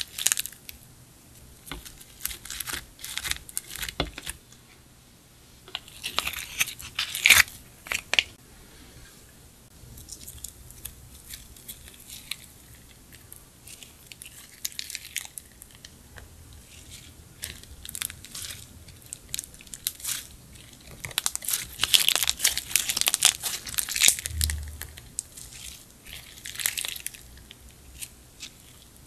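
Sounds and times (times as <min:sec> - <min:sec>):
slime crackling and popping: 0:00.0 - 0:00.8, 0:01.6 - 0:04.4, 0:10.1 - 0:29.0.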